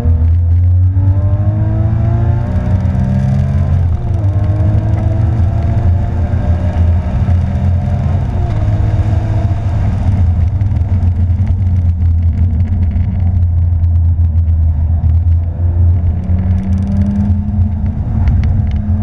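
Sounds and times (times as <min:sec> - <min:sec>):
car engine revving: 0:00.0 - 0:19.0
road noise: 0:00.0 - 0:19.0.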